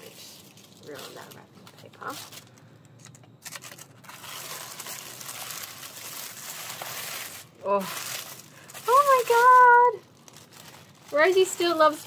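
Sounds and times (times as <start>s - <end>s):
tissue paper crinkling: 0.0s - 2.5s, 3.4s - 12.0s.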